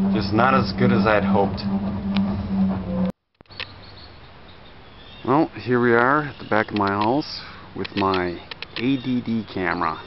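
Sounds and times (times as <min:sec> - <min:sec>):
electrical hum: 0:00.0 - 0:03.1
faint outdoor background noise: 0:00.0 - 0:10.0.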